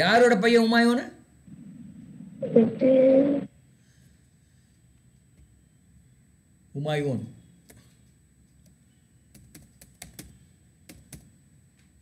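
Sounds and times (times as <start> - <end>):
computer keyboard keystrokes: 9.3 - 11.3.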